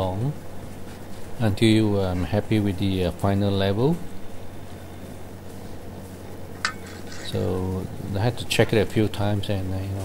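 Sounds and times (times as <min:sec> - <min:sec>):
low steady hum: 0:00.0 - 0:10.0
light metallic clink: 0:06.6 - 0:07.4.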